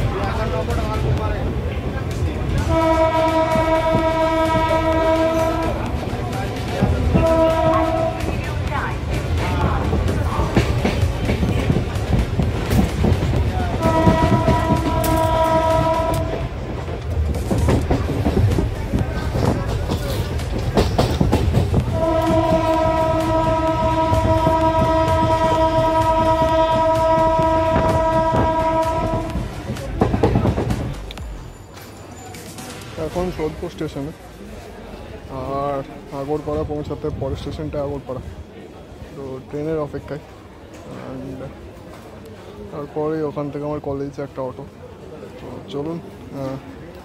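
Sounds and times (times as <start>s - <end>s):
low rumble of train: 0.0s - 47.0s
train horn blast: 2.6s - 6.0s, 6.9s - 8.4s, 13.7s - 16.7s, 21.9s - 29.6s.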